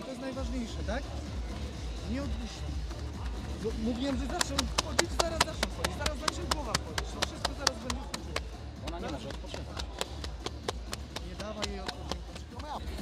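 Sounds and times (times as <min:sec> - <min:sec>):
hands slapping legs: 0:02.8 - 0:12.9.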